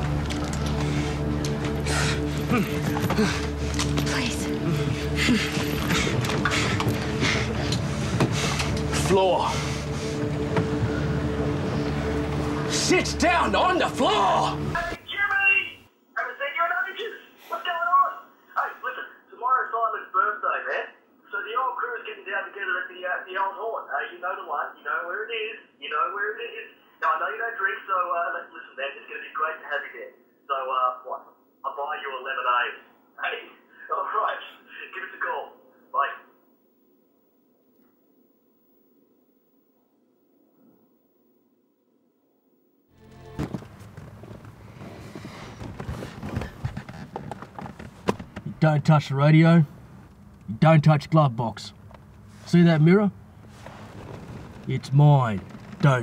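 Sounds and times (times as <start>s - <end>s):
boat engine droning: 0.0s - 15.0s
man speaking over telephone: 12.7s - 36.3s, 48.4s - 49.7s, 50.5s - 51.8s, 52.4s - 53.2s, 54.6s - 56.0s.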